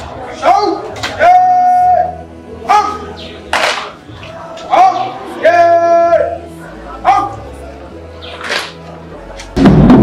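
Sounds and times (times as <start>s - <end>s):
person shouting command: 0.4s - 3.1s, 7.0s - 7.4s.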